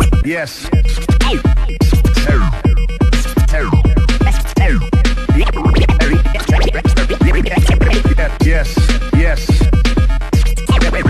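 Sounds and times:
electro beat with deep kick: 0.0s - 11.0s
turntable scratching: 0.0s - 11.0s.

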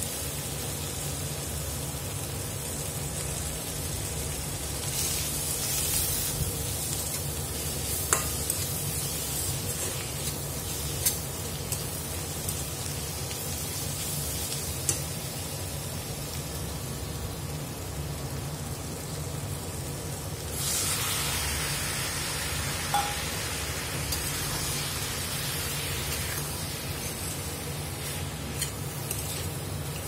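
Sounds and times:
vegetables sizzling in a pan: 0.0s - 30.0s
spatula clinking against pan: 23.0s - 23.3s.

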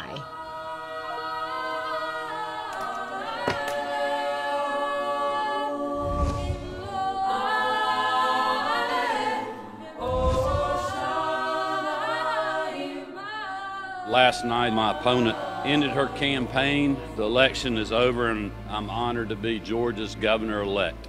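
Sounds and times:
choir singing sustained chords: 0.0s - 21.0s.

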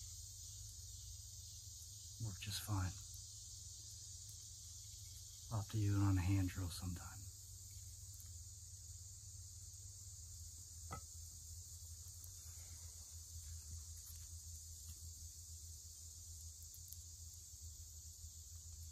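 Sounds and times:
high-pitched insect chorus: 0.0s - 18.9s.

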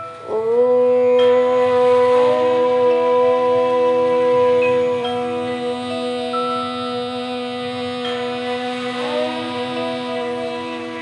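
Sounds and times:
soft background music: 0.0s - 11.0s
woman chanting om: 0.0s - 11.0s.

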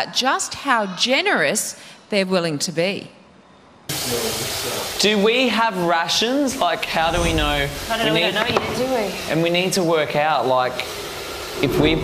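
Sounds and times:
loud steady hiss: 3.9s - 12.0s.

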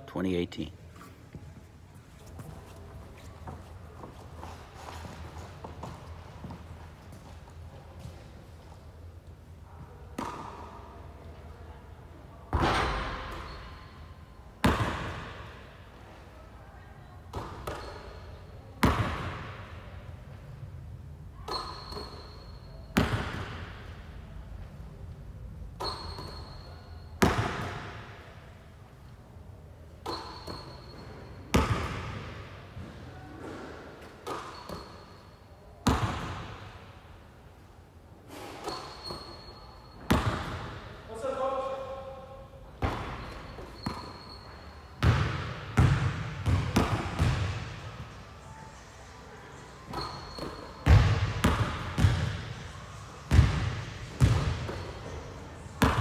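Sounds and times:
basketball bouncing on court: 14.6s - 15.5s, 18.8s - 19.8s, 21.5s - 23.9s, 27.2s - 28.2s, 30.0s - 32.5s, 35.8s - 36.7s, 40.1s - 40.9s, 42.8s - 44.3s, 45.0s - 47.9s, 49.9s - 52.6s, 53.3s - 55.1s, 55.8s - 56.0s.

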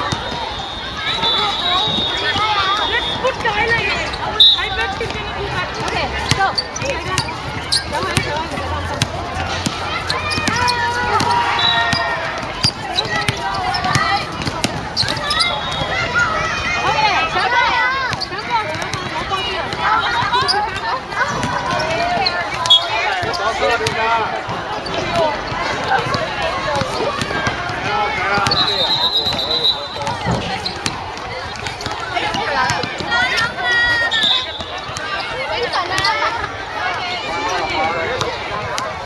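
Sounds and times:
people talking and calling out: 0.0s - 39.0s
basketball dribbling on hard court: 23.2s - 24.0s.

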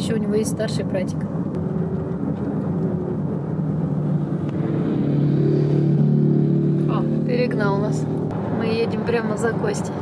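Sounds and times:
road and car noise: 0.0s - 10.0s
motorcycle engine: 1.6s - 8.6s.

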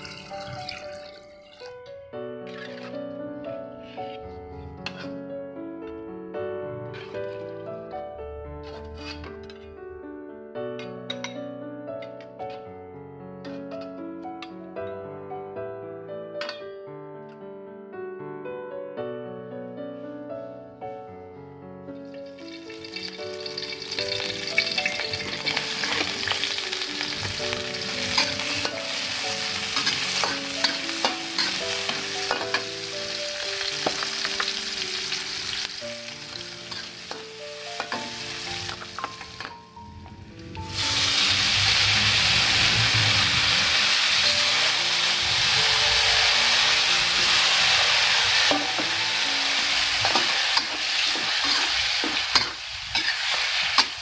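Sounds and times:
food sizzling in hot oil: 0.0s - 1.7s, 22.0s - 39.5s, 40.4s - 54.0s.

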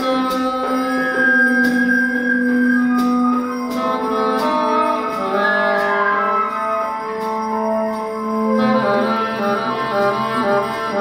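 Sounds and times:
band music with sustained notes: 0.0s - 11.0s.

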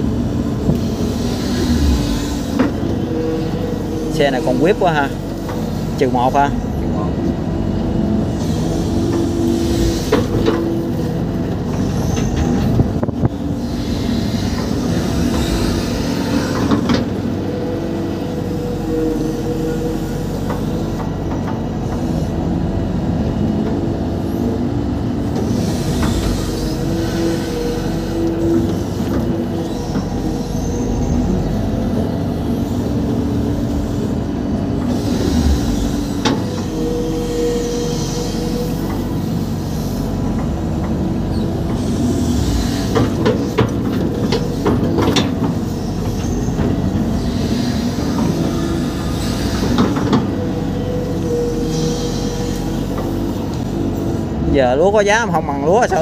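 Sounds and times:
excavator diesel engine under load: 0.0s - 56.0s.

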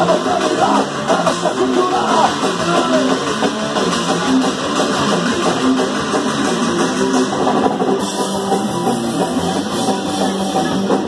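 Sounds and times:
punk band playing live: 0.0s - 11.0s.

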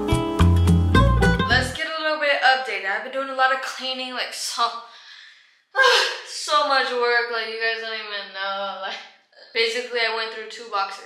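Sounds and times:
woman vocalising: 5.8s - 6.4s.

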